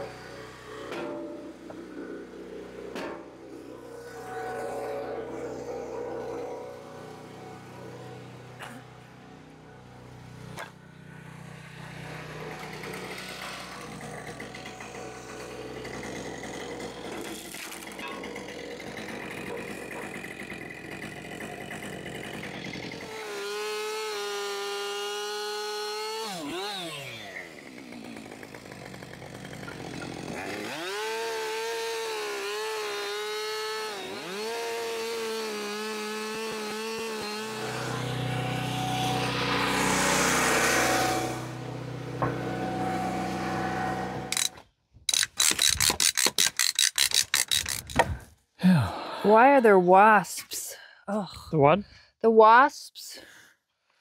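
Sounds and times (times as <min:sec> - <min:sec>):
small petrol engine revving: 0:11.7 - 0:44.5.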